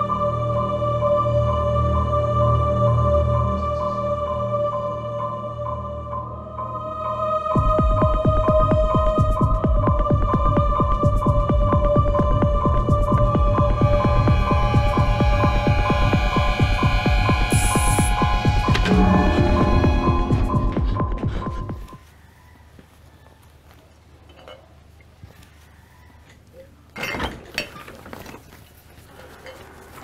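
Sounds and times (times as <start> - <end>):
low throbbing pulse: 7.6 - 22.0
sustained high synth tones: 13.4 - 22.0.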